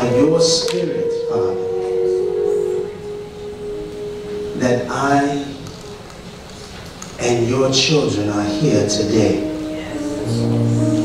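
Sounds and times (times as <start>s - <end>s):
organ holding a chord: 0.0s - 11.0s.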